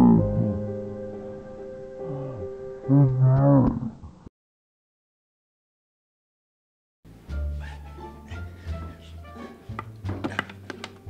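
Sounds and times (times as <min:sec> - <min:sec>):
man's low wavering cry: 0:02.0 - 0:03.8.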